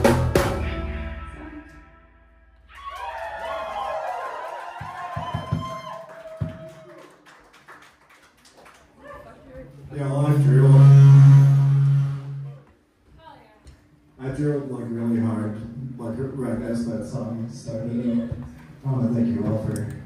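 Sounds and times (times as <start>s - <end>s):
voices and whoops: 2.7s - 7.2s
loud held low amplified note: 10.0s - 12.8s.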